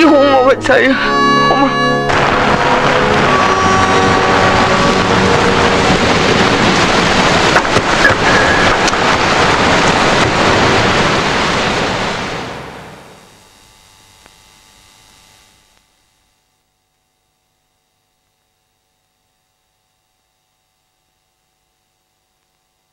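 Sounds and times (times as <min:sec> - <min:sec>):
loud steady rushing noise: 0:00.0 - 0:15.6.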